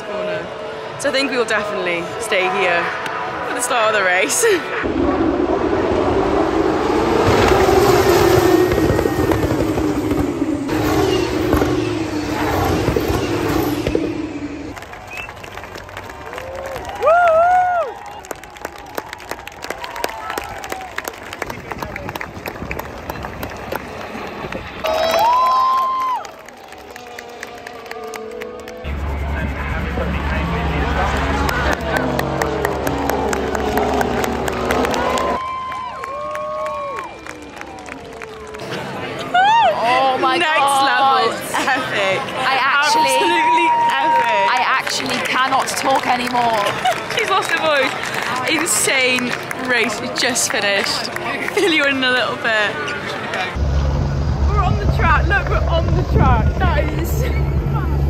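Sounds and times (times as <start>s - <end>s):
crowd voices and cheering: 0.0s - 58.0s
racing cars on circuit: 0.0s - 58.0s.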